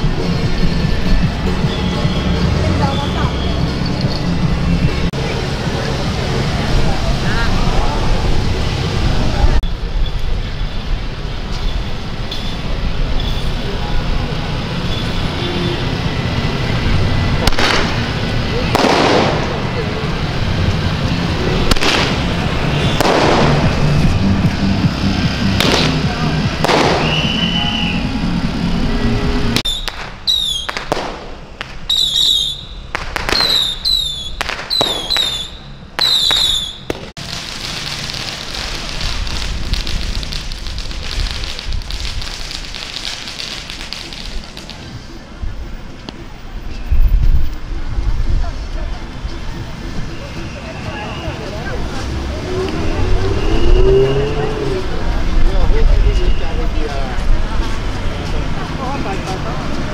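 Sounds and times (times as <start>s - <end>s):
crowd voices: 0.0s - 29.6s, 34.7s - 59.9s
street noise: 0.0s - 59.9s
firecrackers banging: 16.1s - 28.6s, 29.4s - 45.1s.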